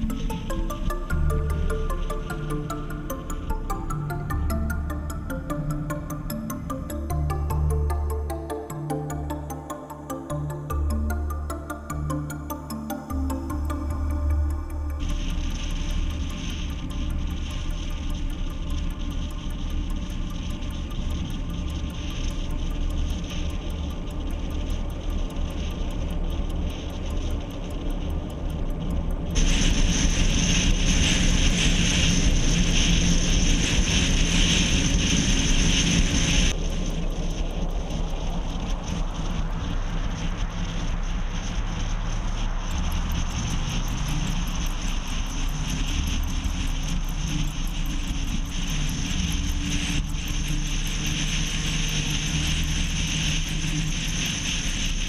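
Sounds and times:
faint rising whine: 0.0 - 55.0
road and wind noise in car: 15.5 - 55.0.

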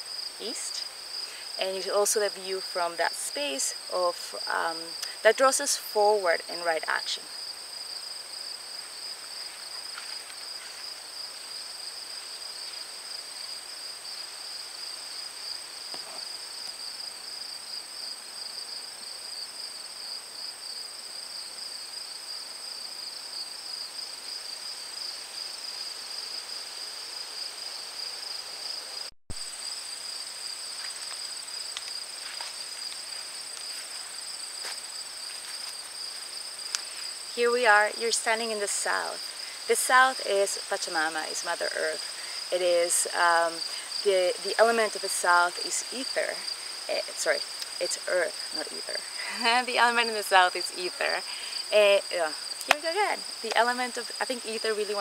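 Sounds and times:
pulsing insect trill: 0.0 - 55.0.

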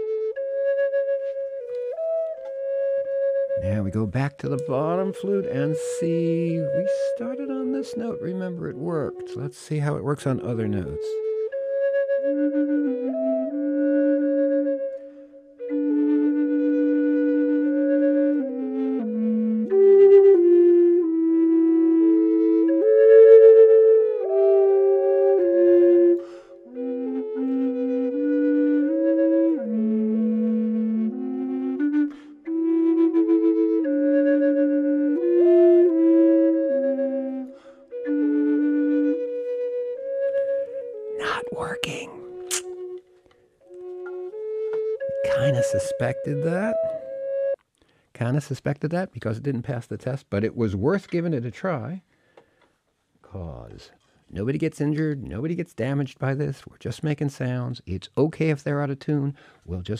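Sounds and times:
higher flute holding long notes: 0.0 - 47.6
lower flute holding long notes: 0.0 - 47.6.

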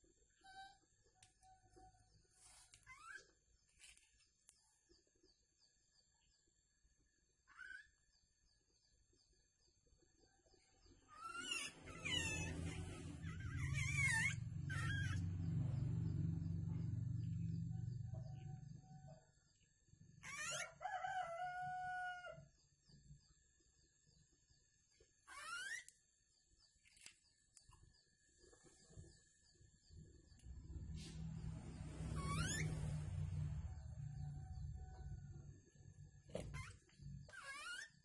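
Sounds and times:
birds calling: 11.1 - 16.1
low rumble: 12.0 - 18.9, 30.0 - 36.2.

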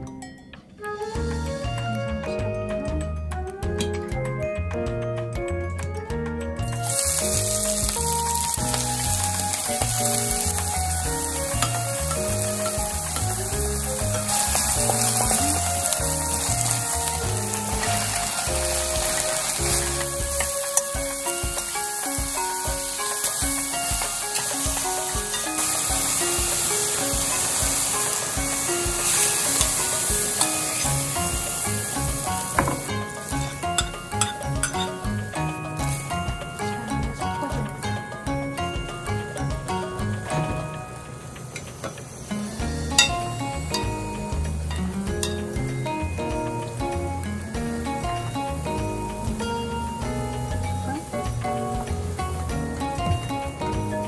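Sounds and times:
vegetables sizzling in a pan: 6.8 - 54.0.

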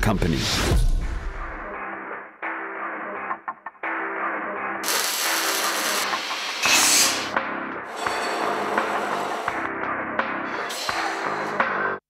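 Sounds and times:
grinder on steel: 4.8 - 7.3, 7.9 - 9.7
welding arc crackling: 4.8 - 7.3.

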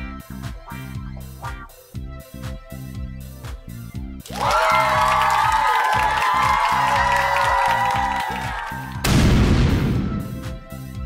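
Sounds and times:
steady low beat: 0.0 - 4.2.

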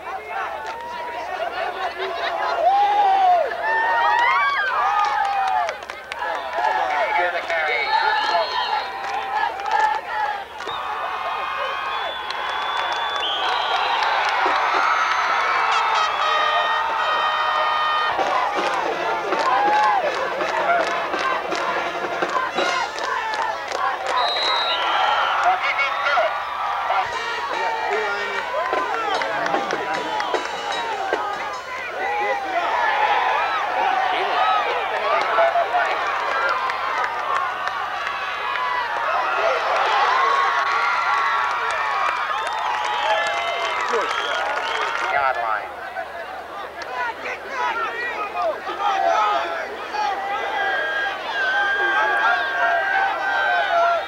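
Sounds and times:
crowd cheering and shouting: 0.0 - 54.0.

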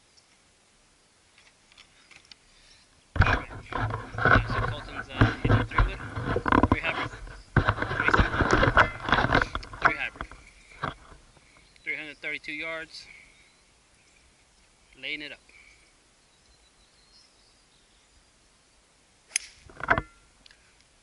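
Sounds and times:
rustling and scraping of camera handling: 3.2 - 11.8, 19.7 - 20.6.

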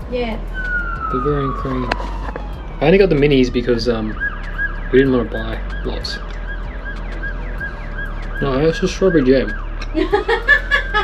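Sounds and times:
electronic siren warbling: 0.3 - 10.4.

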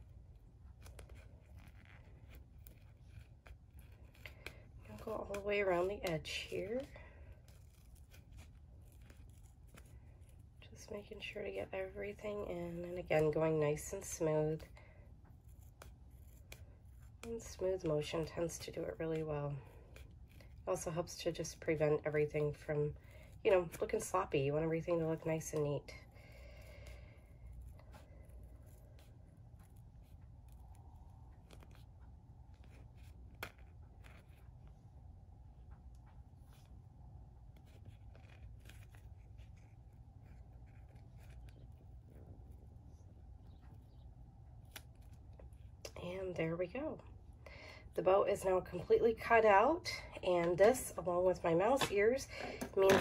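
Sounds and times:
material rustling: 0.0 - 20.8, 21.5 - 46.3
scissors snipping vinyl: 0.1 - 34.8, 35.6 - 42.6, 43.3 - 46.1.

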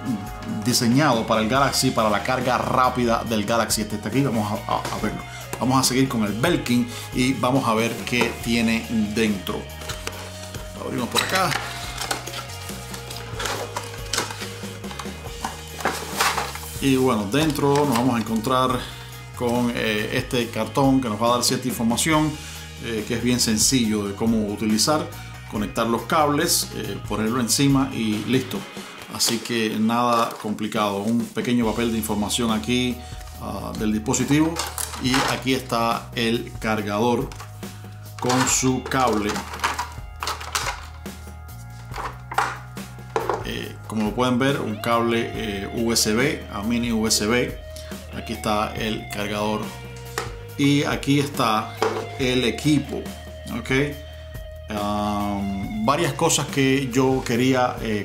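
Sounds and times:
background music: 0.0 - 58.0
plastic knocks and clicks: 41.9 - 43.5.

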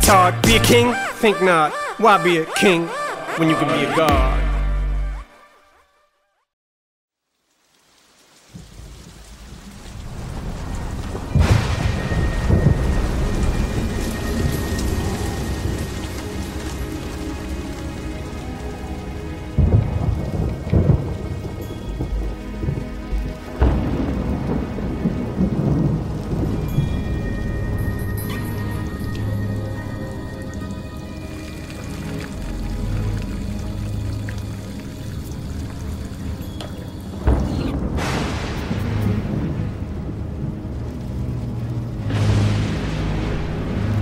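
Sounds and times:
heavy rain: 7.2 - 44.0
thunder claps and rolls: 8.5 - 28.0, 37.0 - 41.0.

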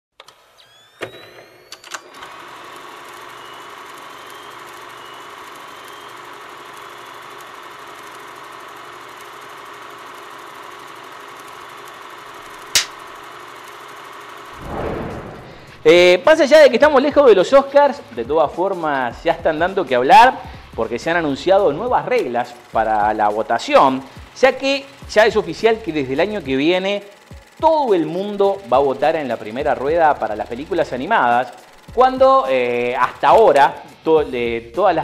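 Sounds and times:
film projector whirring: 0.2 - 14.6, 15.6 - 34.5
projector motor whining up: 0.2 - 16.9, 19.1 - 34.4
projector click: 12.6 - 13.1, 26.6 - 33.9.

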